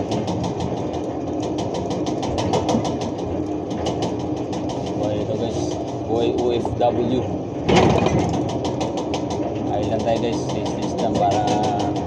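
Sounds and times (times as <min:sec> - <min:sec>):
forklift running hum: 0:00.0 - 0:12.0.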